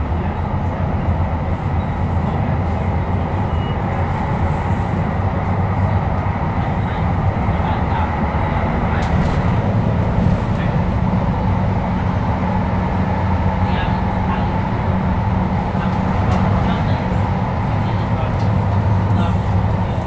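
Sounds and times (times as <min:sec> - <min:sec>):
train wheels rumbling on rail: 0:00.0 - 0:20.0.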